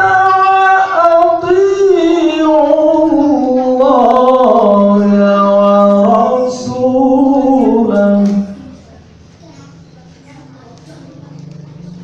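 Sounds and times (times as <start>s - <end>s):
low held chanting tone: 0.0s - 8.9s
faint distant voices: 0.0s - 12.0s.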